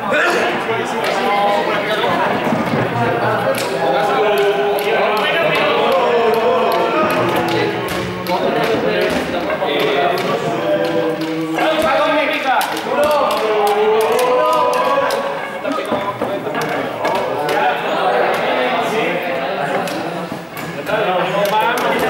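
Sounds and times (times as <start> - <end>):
students talking and calling out: 0.0 - 22.0.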